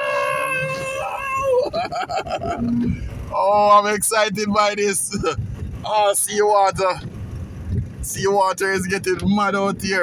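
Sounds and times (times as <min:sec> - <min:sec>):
person whooping excitedly: 0:00.0 - 0:02.8
low rumble: 0:00.0 - 0:10.0.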